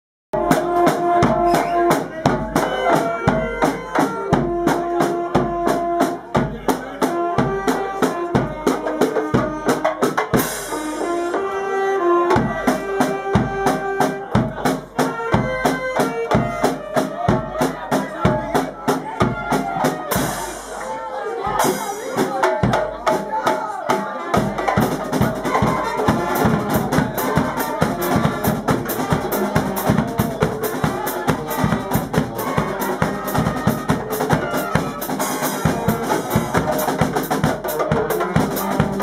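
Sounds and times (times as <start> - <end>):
brass band playing: 0.4 - 39.0.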